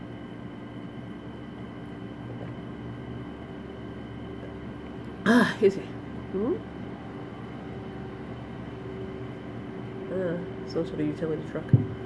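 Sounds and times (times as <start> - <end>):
constant hum tones: 0.0 - 12.0.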